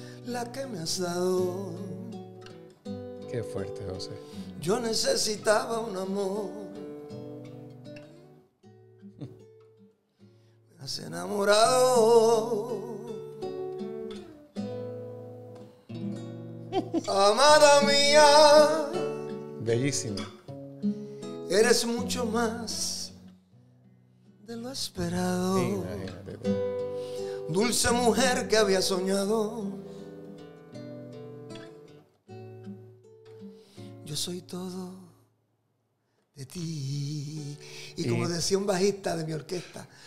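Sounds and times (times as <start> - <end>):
acoustic guitar chords: 0.0 - 35.4, 36.4 - 40.0
person singing: 11.0 - 13.2, 16.8 - 20.2, 24.5 - 26.5, 27.1 - 29.9, 36.4 - 39.9.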